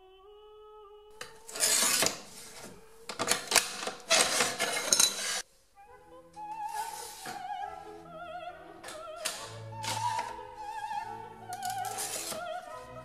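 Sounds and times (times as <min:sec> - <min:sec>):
tile cutter scraping across tile: 0:01.2 - 0:05.4, 0:11.5 - 0:12.7.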